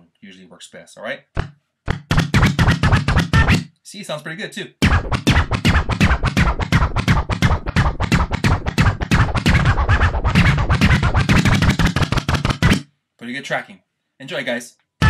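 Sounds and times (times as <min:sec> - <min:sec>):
turntable scratching music: 0:01.9 - 0:03.6, 0:04.8 - 0:12.8.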